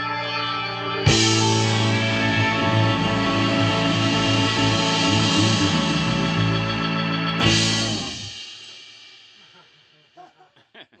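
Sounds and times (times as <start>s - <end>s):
electric guitar and bass chord: 0.0s - 8.4s.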